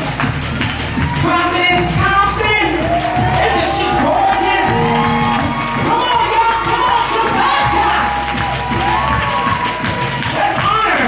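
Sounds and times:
congregation cheering and shouting: 0.0s - 11.0s
hand-clapping: 0.0s - 11.0s
lively music: 0.0s - 11.0s.

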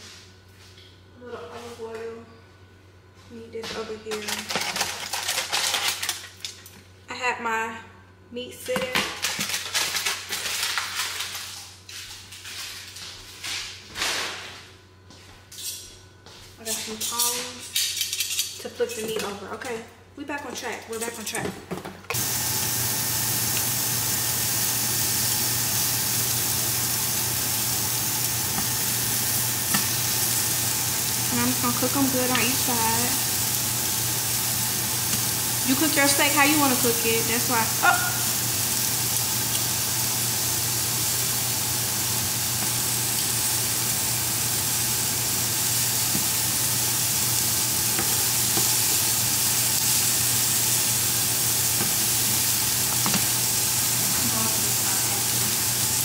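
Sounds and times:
aluminium foil crinkling: 4.1s - 6.7s, 9.1s - 13.8s
meat sizzling in frying pan: 22.2s - 56.0s.

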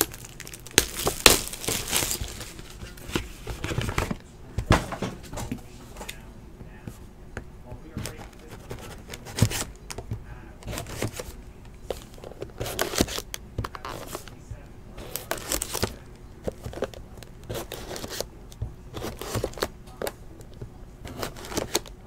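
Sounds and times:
packaging crinkling and tearing: 0.0s - 3.0s, 15.1s - 16.0s.

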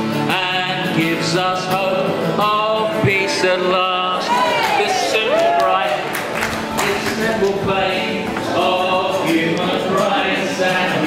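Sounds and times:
strummed acoustic guitar: 0.0s - 11.0s
men singing together: 0.2s - 11.0s.

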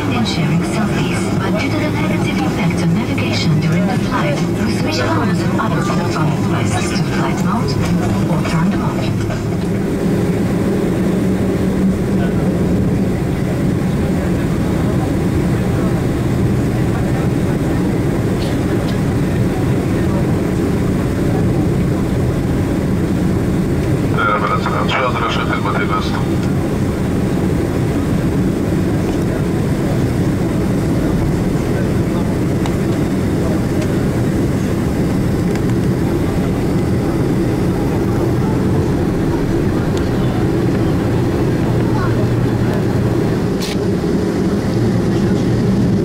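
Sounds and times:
aircraft rolling over wet pavement: 0.0s - 46.0s
jet engines idling drone: 0.0s - 46.0s.

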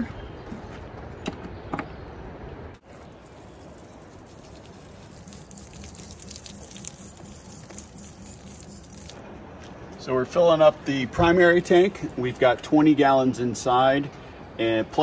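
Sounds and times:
water spraying on a boot: 2.9s - 9.2s.

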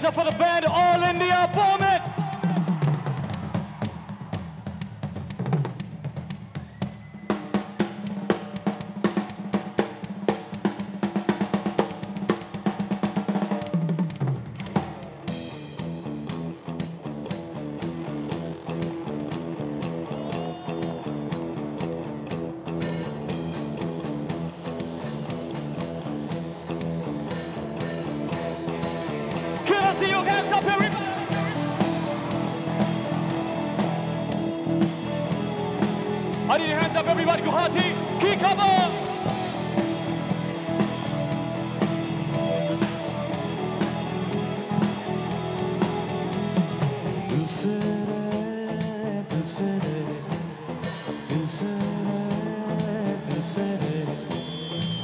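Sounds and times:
drum kit hits and rolls: 0.0s - 55.0s
bass guitar groove: 14.8s - 55.0s.

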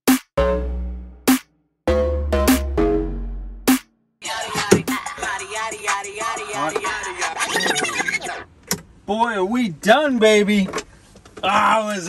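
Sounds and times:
dj mix music: 0.1s - 8.5s.

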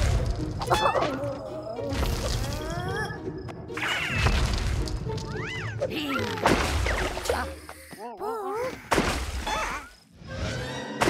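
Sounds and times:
cartoon background music: 0.0s - 8.0s, 9.4s - 11.0s.

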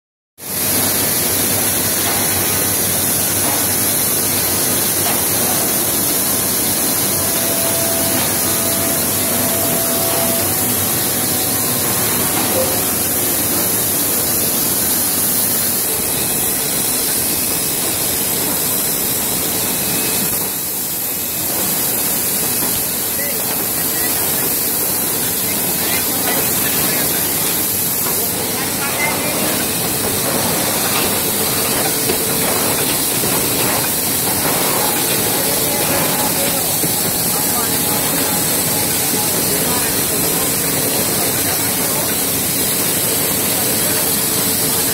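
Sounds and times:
machinery din: 4.5s - 14.9s.

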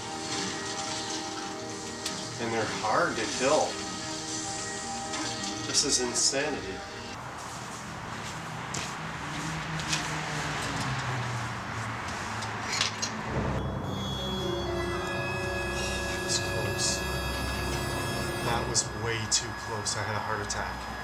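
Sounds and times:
low drone: 13.2s - 21.0s.

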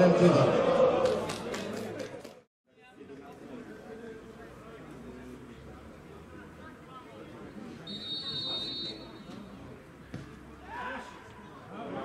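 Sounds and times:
voices talking: 3.2s - 12.0s
referee's whistle blast: 7.8s - 9.3s.

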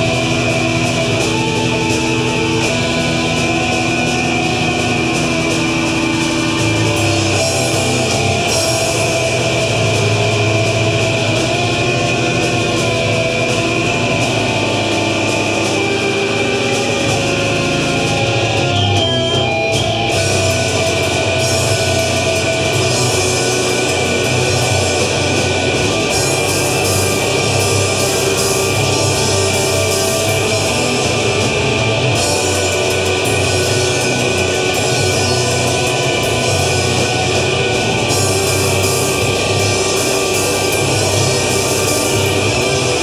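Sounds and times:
distorted electric guitars: 0.0s - 43.0s
drum kit: 0.0s - 43.0s.

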